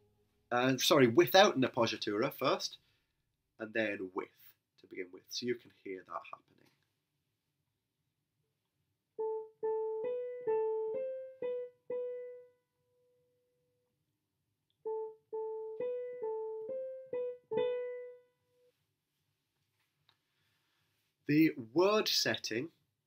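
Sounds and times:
keyboard melody: 9.2 - 13.1, 14.8 - 18.7.

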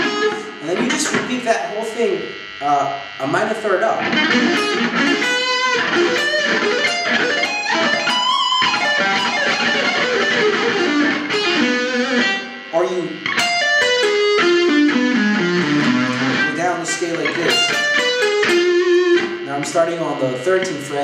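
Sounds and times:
electric guitar arpeggios: 0.0 - 21.0.

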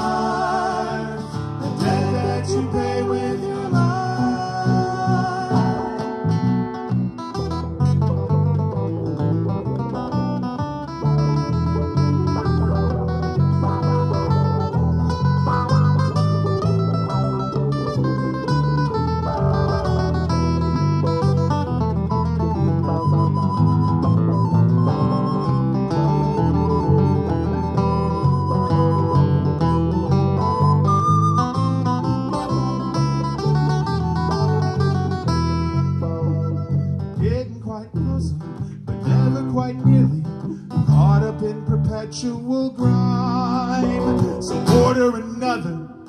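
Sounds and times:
bass line: 0.0 - 45.4
strummed acoustic guitars: 0.0 - 46.0
recorder melody: 1.8 - 37.4.

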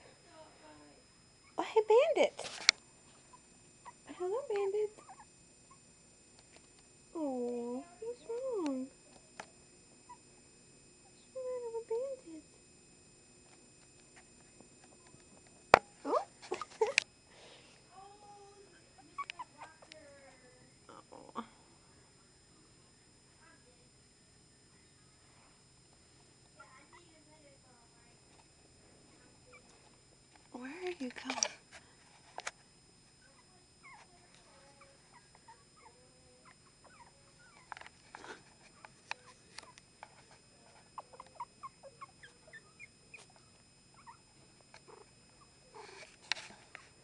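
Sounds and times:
puppy whimpering: 3.3 - 4.2, 4.9 - 5.8, 33.2 - 39.8, 41.0 - 44.2, 44.8 - 46.0
puppies squeaking and whimpering: 5.0 - 5.3, 41.0 - 44.2.

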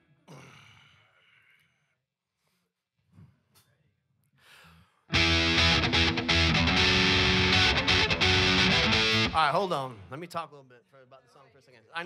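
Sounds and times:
live rock band playing: 5.1 - 9.4.

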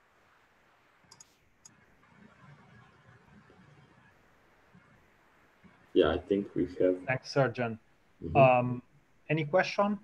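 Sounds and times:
computer mouse clicks: 1.1 - 3.8.

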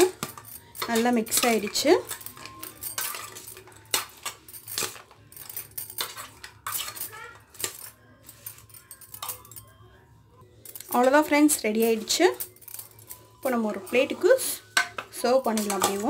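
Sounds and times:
metal spoon scraping steel bowl: 0.0 - 9.3, 10.8 - 16.0.

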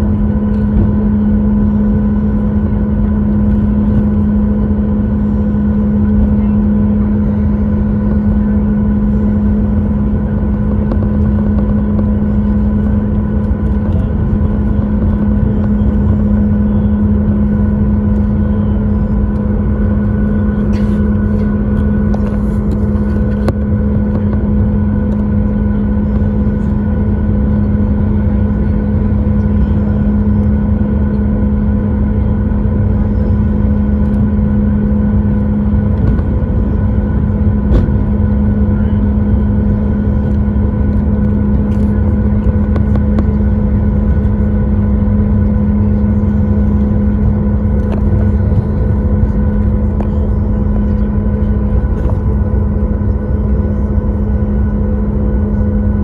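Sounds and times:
jet engines humming in cabin: 0.0 - 56.0.

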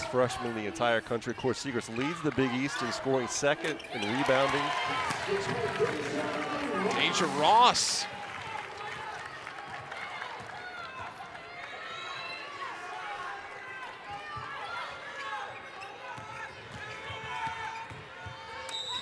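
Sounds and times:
sneakers squeaking: 3.5 - 5.7, 15.1 - 19.0.

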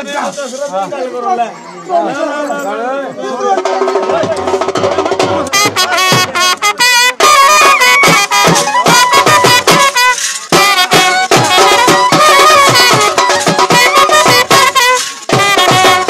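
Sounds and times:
drums beaten with sticks: 3.4 - 16.0
reedy wind instrument melody: 3.4 - 16.0.

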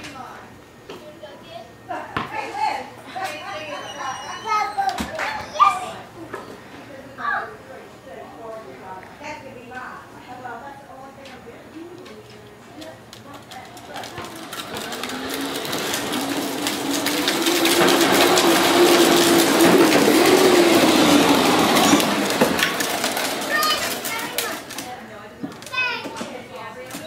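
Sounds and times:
engine droning past: 14.1 - 24.1.

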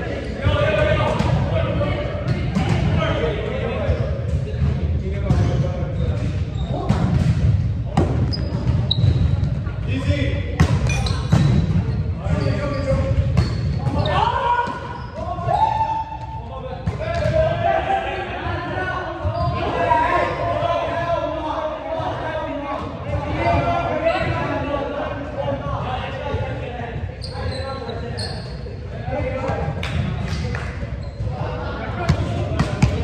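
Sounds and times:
players calling and talking: 0.0 - 33.0
volleyball hits and bounces: 10.6 - 14.0, 32.0 - 33.0.

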